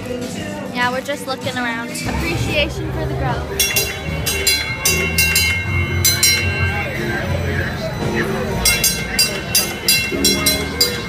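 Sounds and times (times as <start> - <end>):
trolley bell clanging rapidly: 2.1 - 11.0.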